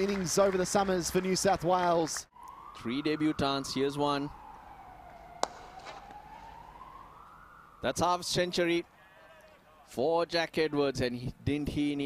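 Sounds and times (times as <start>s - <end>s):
open-air background: 0.0s - 12.0s
faint siren wailing: 2.3s - 9.2s.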